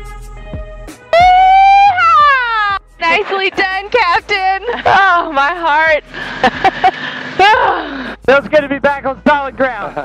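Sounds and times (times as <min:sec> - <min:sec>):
woman whooping yeehaw: 0:01.1 - 0:02.8, 0:07.4 - 0:08.0.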